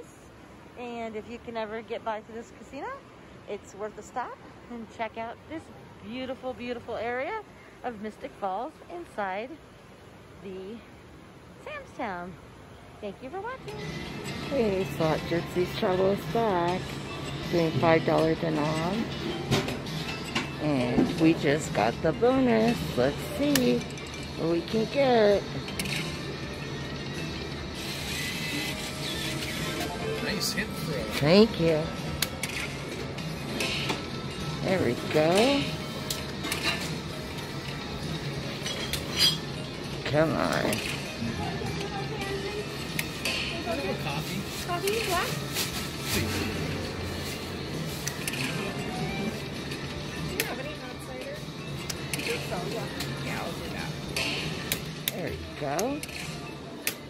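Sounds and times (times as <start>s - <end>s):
steady hum: 0.0s - 56.8s
slot machine electronic tones: 26.0s - 32.0s
game music: 29.2s - 31.3s.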